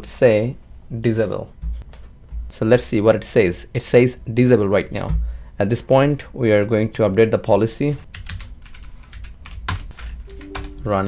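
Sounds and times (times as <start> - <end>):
computer keyboard typing: 8.1 - 11.0.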